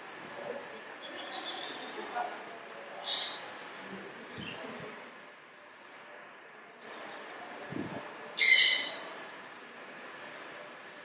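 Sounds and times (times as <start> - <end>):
harsh bird call: 8.4 - 9.2.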